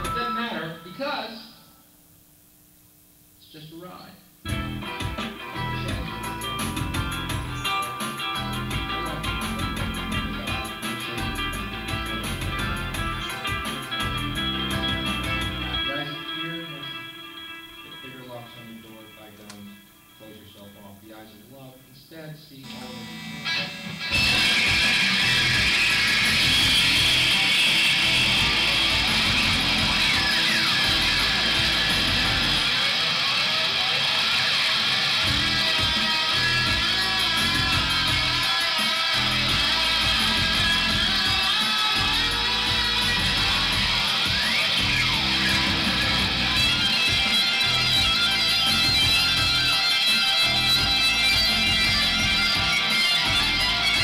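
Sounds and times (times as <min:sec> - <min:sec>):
electric guitar over loops: 0:00.0 - 0:00.8, 0:04.4 - 0:20.2, 0:22.6 - 0:54.0.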